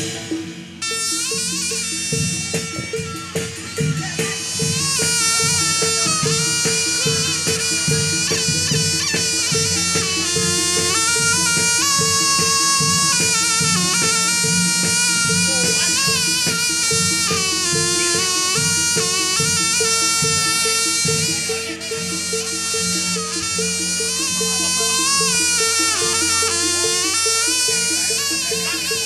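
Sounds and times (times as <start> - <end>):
drums rhythm: 0.0 - 29.0
repeating gamelan note: 0.0 - 29.0
shrill reed melody: 0.0 - 29.0.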